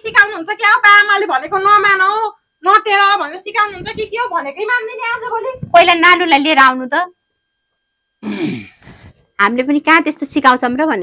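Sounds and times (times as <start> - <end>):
breathy vocal sound: 8.2 - 9.1.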